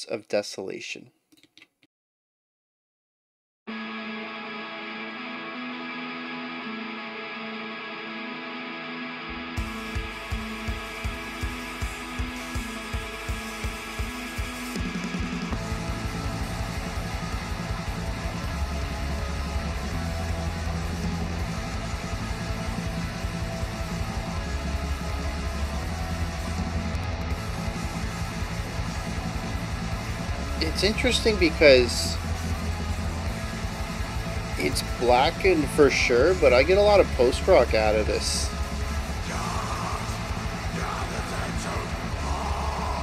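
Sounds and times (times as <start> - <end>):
distorted electric guitar: 3.7 - 43.0
metal band playing: 9.5 - 43.0
steady drum beat: 9.6 - 43.0.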